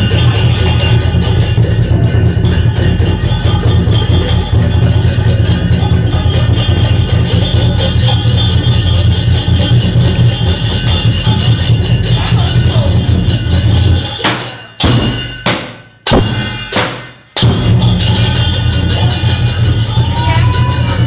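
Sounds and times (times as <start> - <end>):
clashing cymbals: 0.0 - 21.0
large drum beating: 0.0 - 21.0.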